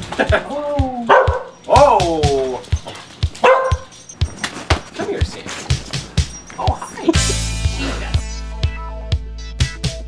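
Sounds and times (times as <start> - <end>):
dog yelping: 1.0 - 4.7, 5.7 - 7.2
dog barking harshly: 1.1 - 1.8, 3.4 - 4.0.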